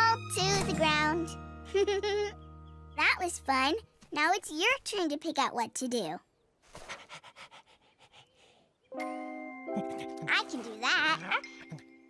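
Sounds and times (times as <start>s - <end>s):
cartoon puppy panting: 6.8s - 8.6s.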